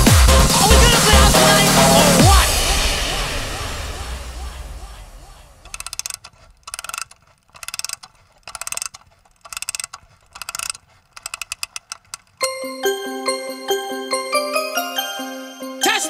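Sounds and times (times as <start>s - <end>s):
electronic dance track: 0.0s - 5.6s
rapid mechanical ratchet clicking: 5.6s - 12.4s.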